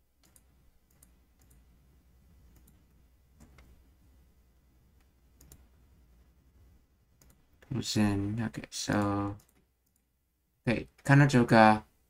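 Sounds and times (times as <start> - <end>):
faint computer clicks: 5.0 - 5.7.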